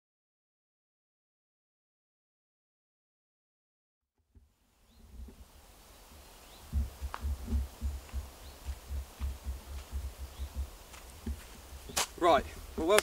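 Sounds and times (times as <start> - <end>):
wind buffeting a microphone: 6.4 - 13.0.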